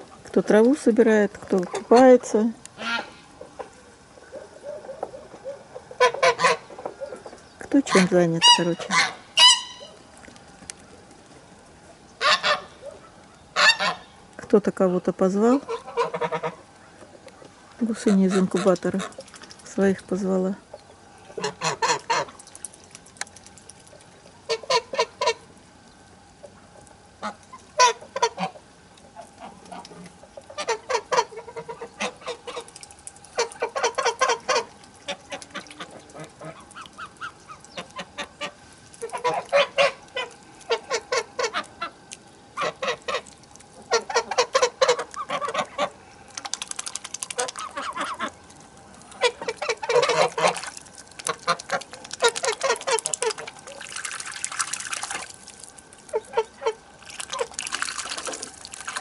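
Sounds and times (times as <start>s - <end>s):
geese honking: 2.8s - 10.0s, 12.2s - 14.2s, 15.6s - 19.2s, 20.7s - 22.4s, 24.4s - 25.5s, 27.2s - 32.7s, 33.3s - 42.0s, 42.6s - 46.1s, 47.3s - 53.5s, 56.1s - 57.6s.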